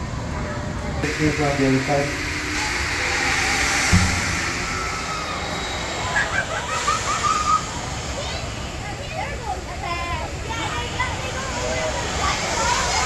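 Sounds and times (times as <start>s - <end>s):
steady rushing hiss: 1.0s - 13.0s
low thump: 3.9s - 5.6s.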